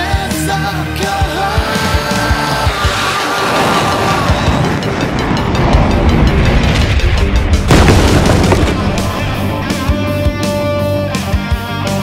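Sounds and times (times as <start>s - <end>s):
background music: 0.0s - 12.0s
loud explosion boom: 3.5s - 10.0s.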